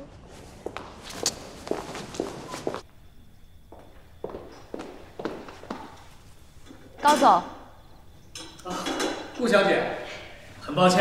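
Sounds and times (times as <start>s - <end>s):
footsteps walking: 0.0s - 2.9s, 3.7s - 6.8s.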